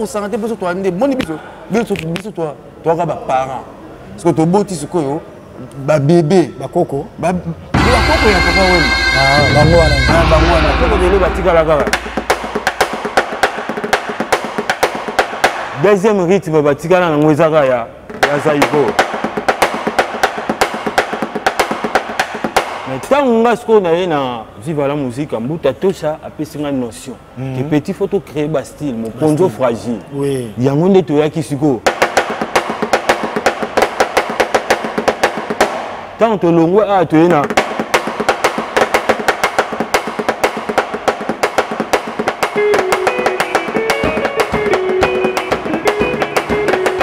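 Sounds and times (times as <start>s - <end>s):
guitar melody: 7.8s - 12.5s, 42.6s - 47.0s
drum kit playing quick rhythm: 7.8s - 15.8s, 37.3s - 47.0s.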